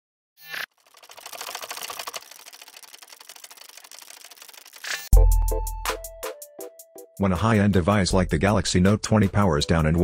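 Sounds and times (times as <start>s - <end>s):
fast run of clicks: 0.7s - 5.1s.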